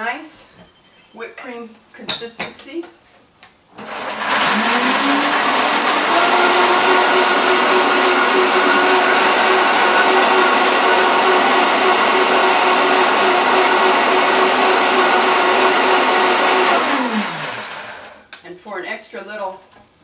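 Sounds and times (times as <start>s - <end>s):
blender motor running: 3.8s - 18.3s.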